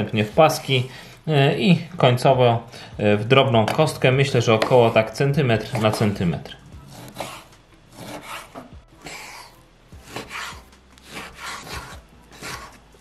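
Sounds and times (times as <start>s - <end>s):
knife chopping on wooden board: 6.9s - 12.8s.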